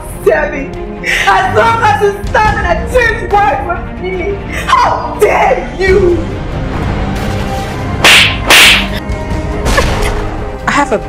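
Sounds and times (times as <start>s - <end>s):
face slaps: 8.0s - 9.0s.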